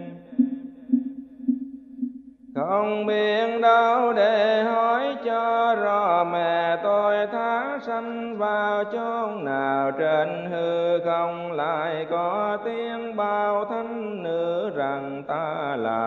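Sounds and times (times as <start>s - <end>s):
person chanting slow melody: 0.0s - 1.4s.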